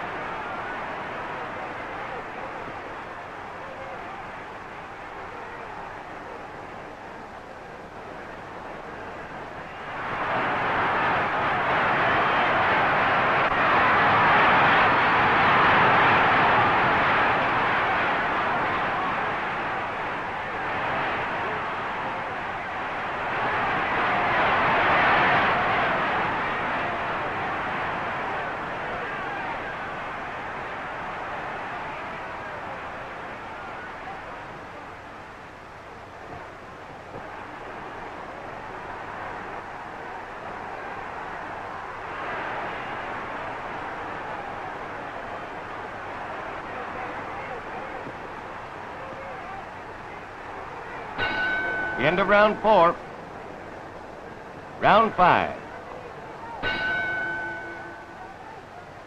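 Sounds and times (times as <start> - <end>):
crowd shouting: 0.0 - 7.3, 8.2 - 59.0
crowd murmur: 0.0 - 59.0.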